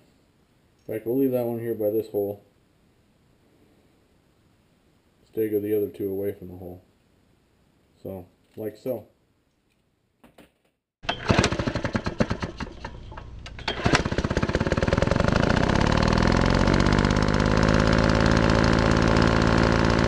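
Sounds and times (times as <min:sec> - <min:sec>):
small engine running: 0:11.0 - 0:20.0.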